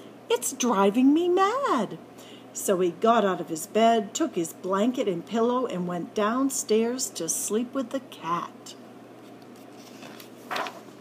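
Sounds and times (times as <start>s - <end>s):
paper page turning: 9.2s - 11.0s.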